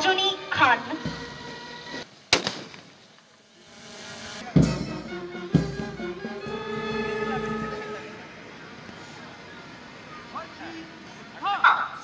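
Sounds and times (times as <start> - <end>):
rifle volley crack: 2.3 - 3.0.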